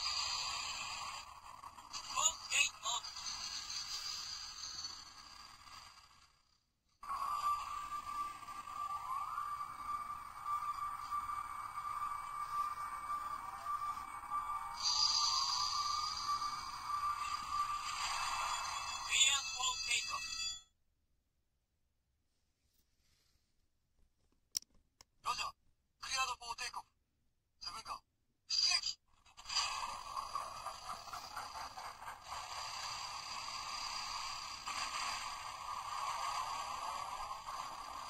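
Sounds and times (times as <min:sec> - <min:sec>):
toy speaker voice and effects: 0:02.0 - 0:03.4, 0:18.9 - 0:20.5, 0:27.7 - 0:29.0.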